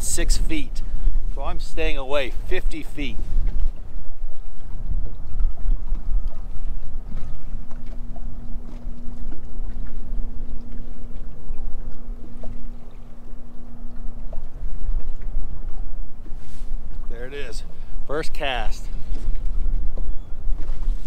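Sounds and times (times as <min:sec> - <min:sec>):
steady hum: 0:00.0 - 0:21.0
wind buffeting microphone: 0:00.0 - 0:21.0.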